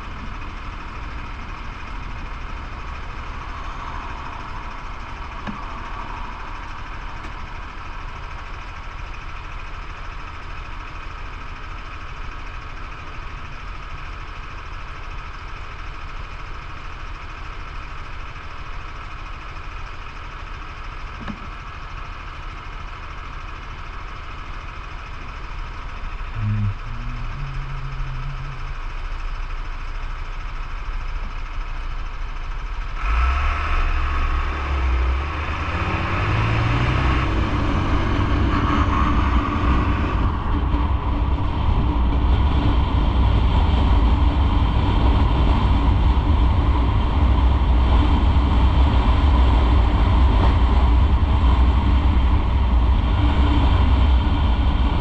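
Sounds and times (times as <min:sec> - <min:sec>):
motorcycle idling: 0:00.0 - 0:33.0
motorcycle pulling away: 0:33.0 - 0:43.4.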